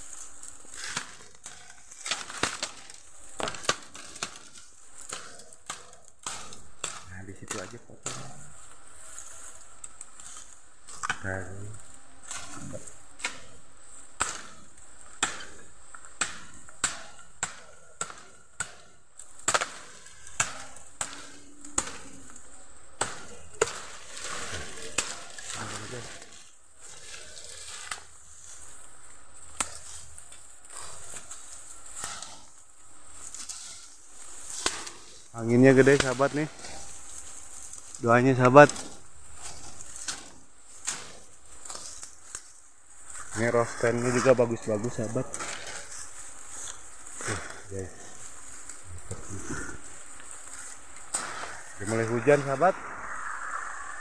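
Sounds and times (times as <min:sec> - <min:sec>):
bamboo leaves rustling in wind: 0:00.0 - 0:54.0
blade chopping bamboo: 0:00.1 - 0:08.4, 0:12.2 - 0:28.1, 0:33.2 - 0:38.0.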